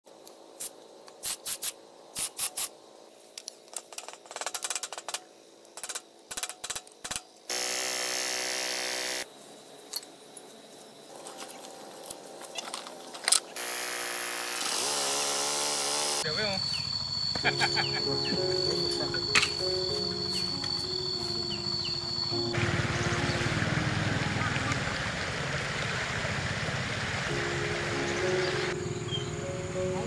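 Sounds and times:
power tool running: 7.5s - 9.2s, 13.6s - 18.5s
tractor engine revving: 13.6s - 27.4s.

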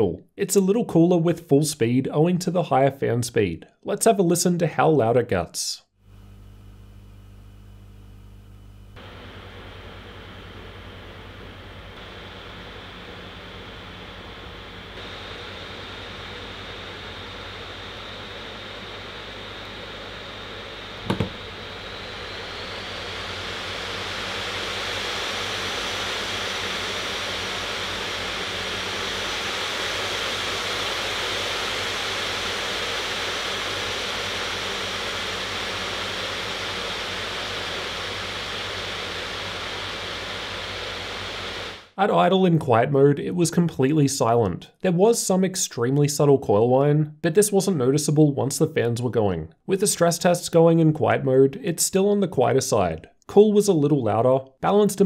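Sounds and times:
laptop cooling fans hissing: 6.1s - 41.9s
faint fan whine: 8.9s - 41.9s.

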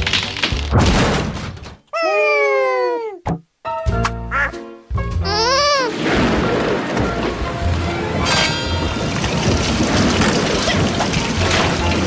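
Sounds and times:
music: 3.6s - 9.6s
cartoon crash: 5.6s - 6.8s.

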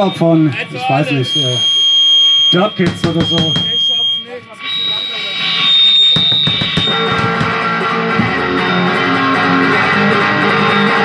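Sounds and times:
amplifier feedback whine: 0.0s - 11.0s
drum hits: 2.8s - 3.8s, 6.1s - 9.6s
electric guitar and bass: 4.4s - 11.0s.

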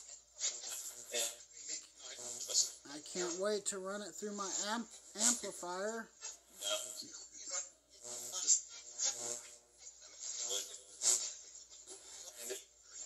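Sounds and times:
chopped voice fragments and hiss: 0.0s - 7.7s.

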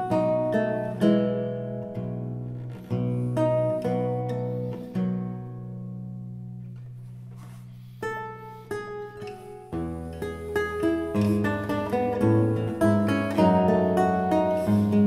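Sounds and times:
lute playing: 0.0s - 15.0s.

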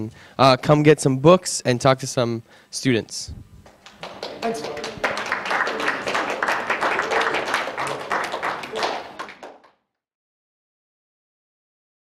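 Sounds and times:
audience clapping: 3.7s - 9.8s
people talking: 4.0s - 9.4s.

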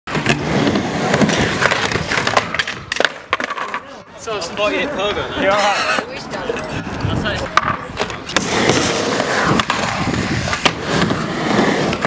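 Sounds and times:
skateboard clacks: 0.1s - 4.0s, 5.8s - 12.0s
skateboard wheels rolling on wood: 0.1s - 12.0s.

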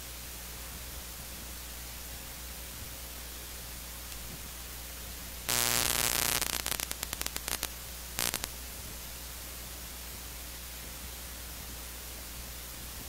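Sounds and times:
low mains hum: 0.0s - 13.0s
crackling static bursts: 5.4s - 8.8s
electrical hiss: 5.4s - 9.0s.

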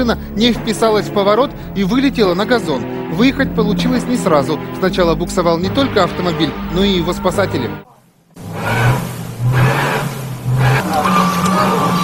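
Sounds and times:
car engine revving: 0.0s - 7.8s, 8.4s - 12.0s
wheels spinning in snow: 8.4s - 12.0s.

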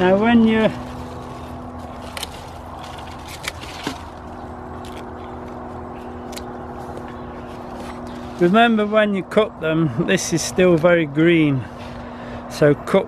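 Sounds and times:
steady machine hum: 0.0s - 13.0s
secateurs snipping stalk: 0.7s - 8.5s.

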